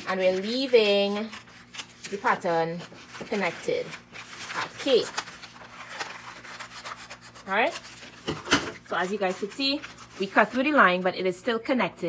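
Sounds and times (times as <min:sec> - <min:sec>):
scissors snipping paper: 0:00.0 - 0:08.1
paper rustling against scissors: 0:00.0 - 0:11.0.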